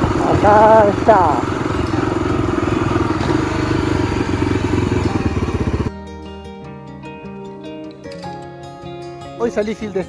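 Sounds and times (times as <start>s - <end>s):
motorcycle engine running: 0.0s - 5.9s
plucked-string music: 0.0s - 10.0s.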